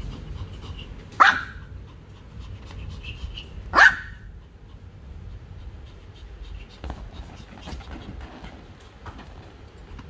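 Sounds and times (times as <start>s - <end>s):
small dog barking: 1.2s - 1.7s, 3.7s - 4.3s.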